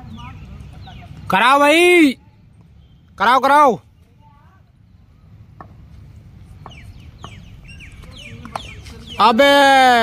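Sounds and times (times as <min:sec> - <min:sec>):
birdsong with falling chirps: 0:00.0 - 0:01.8, 0:02.5 - 0:10.0.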